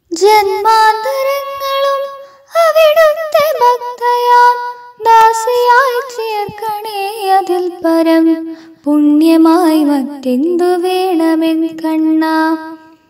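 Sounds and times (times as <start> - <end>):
woman singing unaccompanied: 0.1 - 13.0.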